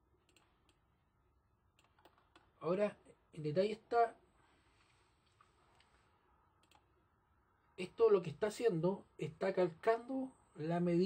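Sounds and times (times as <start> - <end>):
faint computer mouse clicks: 6.6 - 6.9.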